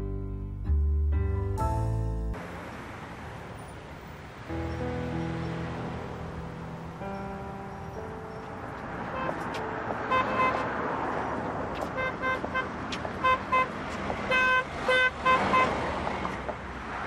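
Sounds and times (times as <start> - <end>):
traffic noise: 1.9 - 17.0
car horn beeps: 9.1 - 10.8, 11.8 - 15.9.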